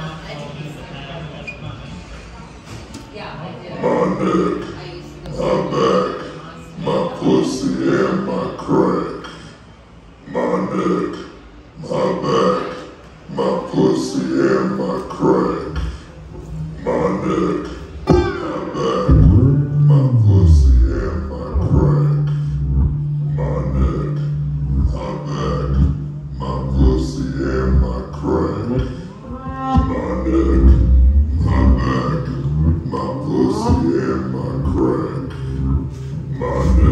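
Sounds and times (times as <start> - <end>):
man growling into microphone: 14.0 - 36.9
amplified banjo playing: 18.0 - 36.9.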